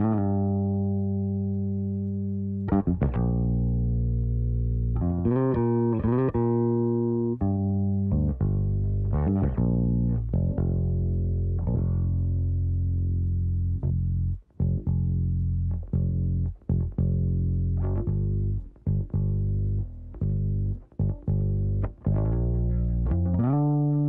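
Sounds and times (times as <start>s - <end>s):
bass guitar playing: 0.0s - 24.0s.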